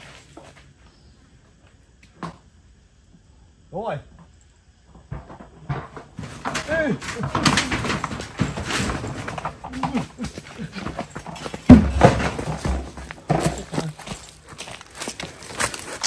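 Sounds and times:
metal clattering and knocking: 4.9 - 14.0
loud thump: 11.7 - 13.1.

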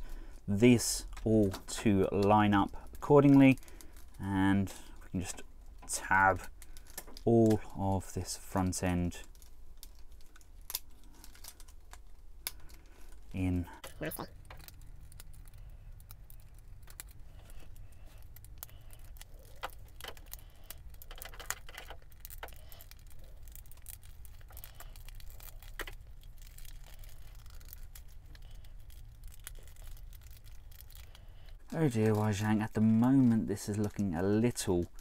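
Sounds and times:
low steady hum: 0.0 - 35.0
plastic toy clicks and rattles: 19.0 - 27.9.

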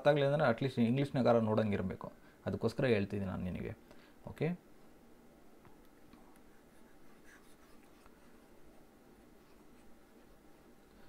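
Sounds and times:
light scratching: 5.8 - 8.8.

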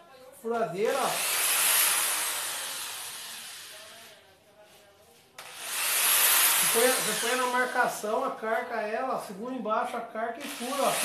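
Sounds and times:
electric drill whining in wood: 0.8 - 4.1, 5.4 - 7.9, 10.4 - 11.0.

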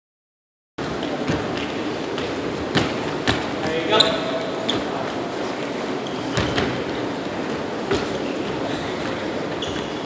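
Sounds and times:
murmur of voices: 0.8 - 10.0.

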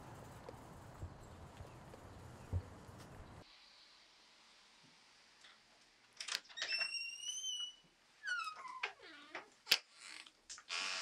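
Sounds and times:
door hinge squeaking: 6.6 - 9.3.

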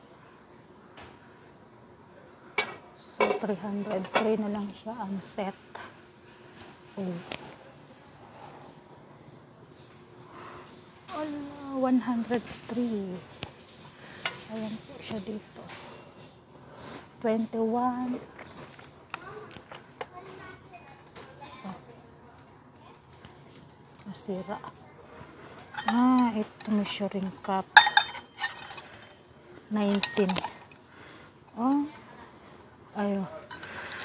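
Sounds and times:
metal cup clinking: 25.7 - 26.8, 27.8 - 29.2, 29.8 - 30.8.

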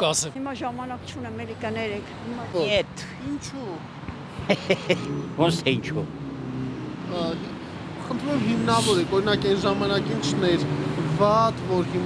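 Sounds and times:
street traffic: 0.0 - 12.0
man speaking: 4.6 - 6.1, 7.1 - 12.0.

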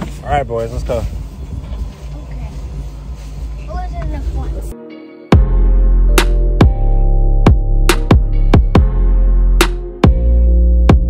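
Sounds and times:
low outdoor rumble: 0.0 - 4.8
steady music tones: 2.7 - 11.0.

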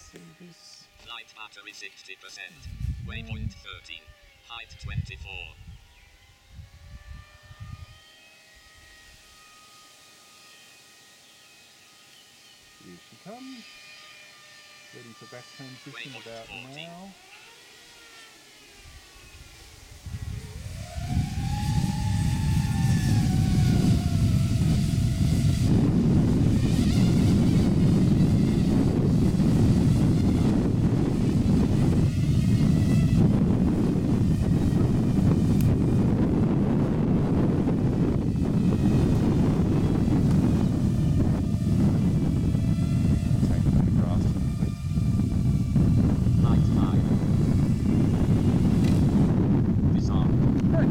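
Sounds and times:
drone motors whining: 0.0 - 50.9
wind rumble on microphone: 2.5 - 9.4, 18.8 - 50.9.

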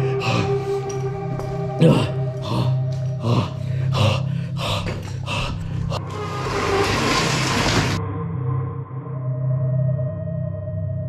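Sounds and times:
low droning ambient music: 0.0 - 11.0.

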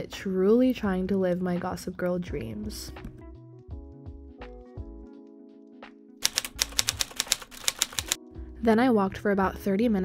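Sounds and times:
typewriter key clacks: 6.2 - 8.2.

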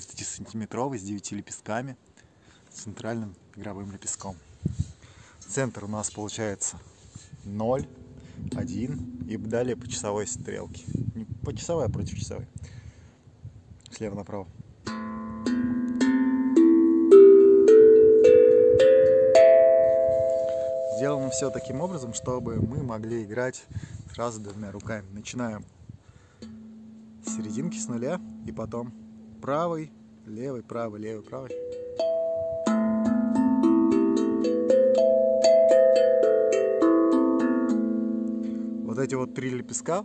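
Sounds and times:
steel tongue drum rising scale: 7.8 - 11.3, 14.9 - 23.0, 26.4 - 40.0.

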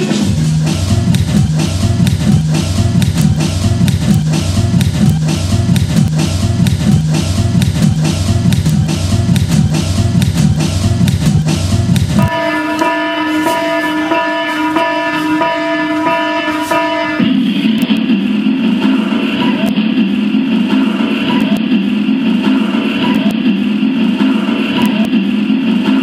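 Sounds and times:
fast drum beat: 0.0 - 12.6
repeating low bass figure: 0.0 - 13.8
held sustained notes: 12.2 - 19.4.

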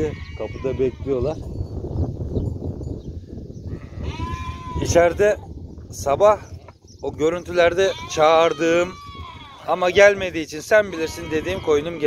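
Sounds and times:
sheep bleating: 0.0 - 1.3, 3.7 - 5.2, 7.4 - 12.0.

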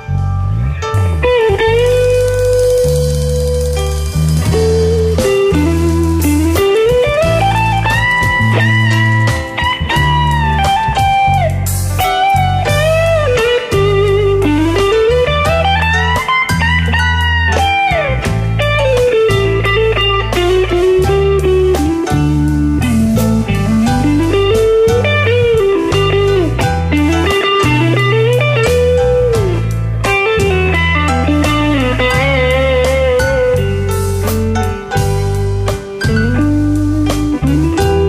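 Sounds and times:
bass guitar: 0.0 - 38.0
electric guitar solo: 0.0 - 38.0
drums: 0.8 - 38.0.

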